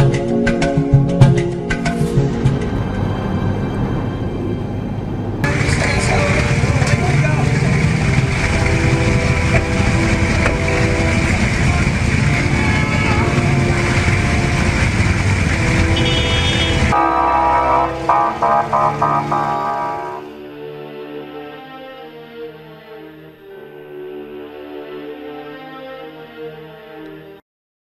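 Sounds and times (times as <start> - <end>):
music: 0.0 - 27.4
traffic: 2.2 - 20.3.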